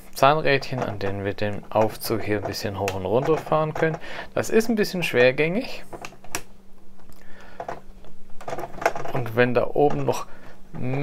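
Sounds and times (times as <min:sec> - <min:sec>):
plastic gears clicking and knocking: 0:00.4 - 0:04.0, 0:07.6 - 0:11.0.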